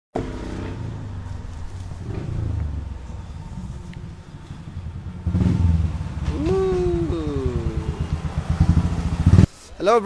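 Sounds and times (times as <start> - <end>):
motorcycle engine thumping: 0.2 - 9.5.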